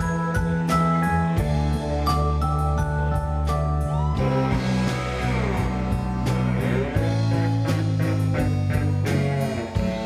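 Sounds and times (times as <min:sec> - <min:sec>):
live rock band playing: 0:00.0 - 0:10.0
electric guitar lead line bending: 0:03.9 - 0:10.0.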